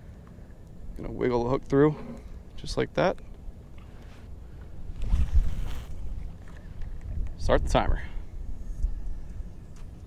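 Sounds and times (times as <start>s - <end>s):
wind buffeting microphone: 4.5s - 9.8s.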